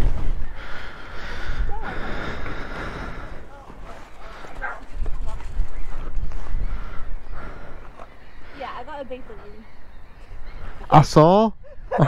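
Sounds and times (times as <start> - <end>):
wind rumble on microphone: 0.0 - 0.6, 1.4 - 7.9.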